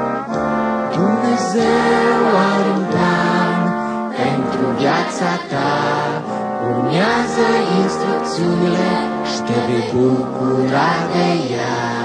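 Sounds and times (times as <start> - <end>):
children's song with singing: 0.0 - 12.0.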